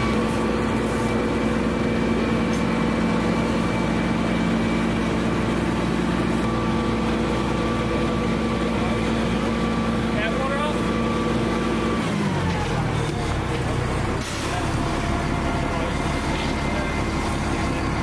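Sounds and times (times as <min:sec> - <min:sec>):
heavy engine running: 0:00.0 - 0:18.0.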